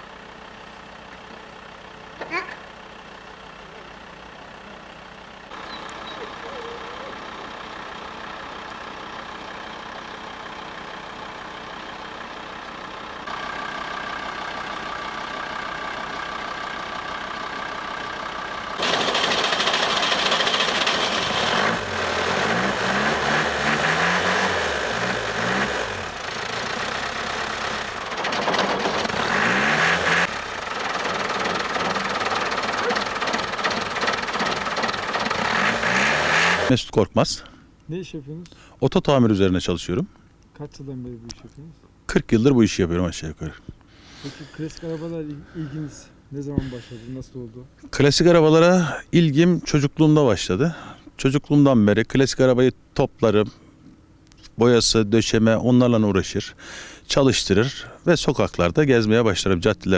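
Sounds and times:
truck engine revving: 18.8s - 36.8s.

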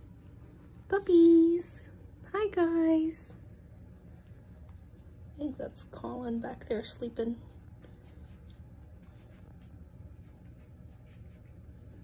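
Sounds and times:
puppies scratching and rustling: 0.0s - 2.1s, 3.1s - 12.0s
low steady hum: 0.0s - 12.0s.

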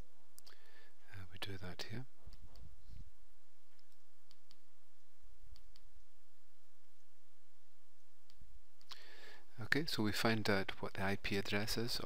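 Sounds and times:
steady background hiss: 0.0s - 12.0s
computer mouse clicks: 3.7s - 4.6s, 5.5s - 5.9s.

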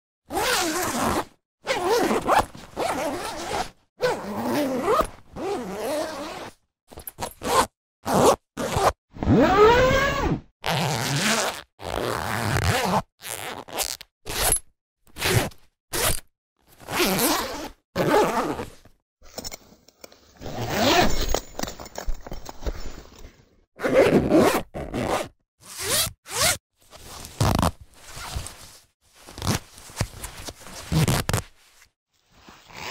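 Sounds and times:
zipper zips: 0.3s - 18.9s, 20.4s - 21.4s, 23.8s - 31.5s, 32.6s - 32.9s.

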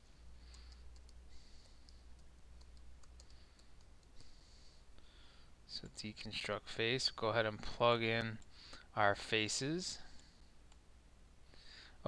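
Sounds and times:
low steady hum: 0.0s - 12.0s
keyboard typing: 0.4s - 4.4s
mouse clicks: 0.4s - 4.4s.

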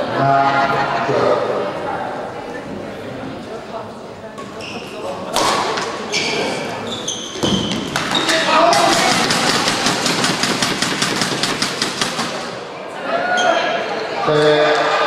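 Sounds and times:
voices: 0.0s - 10.2s
shoe squeaks on court: 4.5s - 5.1s, 6.0s - 8.6s.

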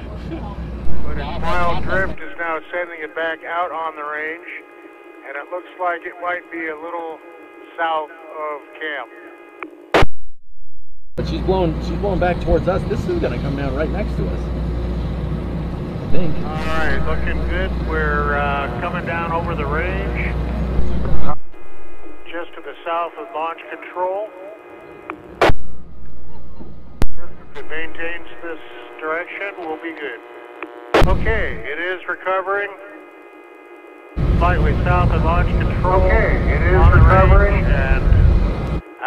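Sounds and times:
faint low rumble: 11.2s - 23.1s, 30.6s - 32.4s, 34.2s - 38.8s.

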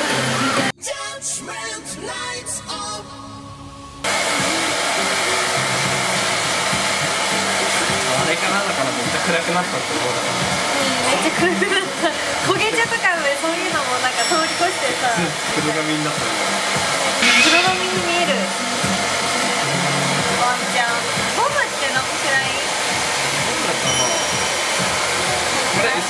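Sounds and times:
hair dryer blowing: 0.0s - 0.7s, 4.1s - 26.0s
woman talking: 10.7s - 15.4s, 17.0s - 18.6s, 20.3s - 22.8s.

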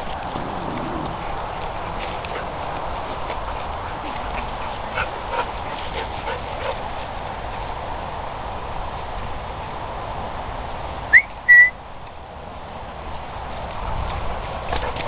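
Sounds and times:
dogs playing and chasing: 0.0s - 11.0s, 12.1s - 15.0s
steady background noise: 0.0s - 15.0s
short dog yips: 11.2s - 11.7s.

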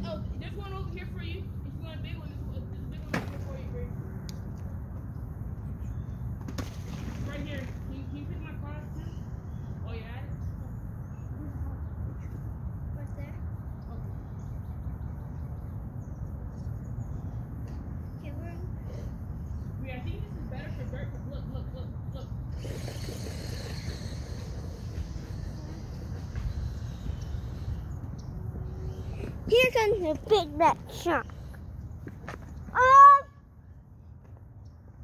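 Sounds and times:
wind rumble on microphone: 0.0s - 29.9s
broad hiss: 22.5s - 28.0s.

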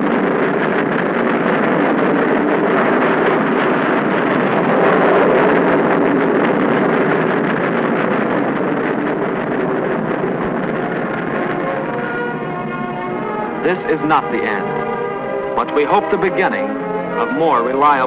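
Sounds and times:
rocket engine roaring: 0.0s - 14.9s.

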